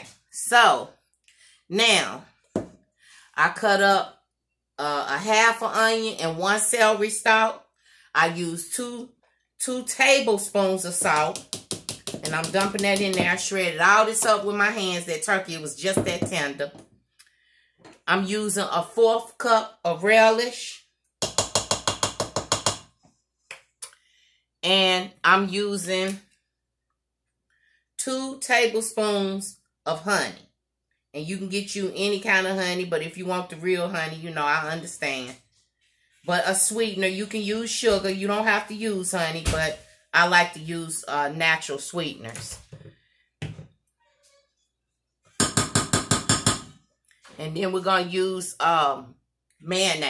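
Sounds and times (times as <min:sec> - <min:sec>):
plastic cup tapping bowl rim: 0:11.0 - 0:13.4.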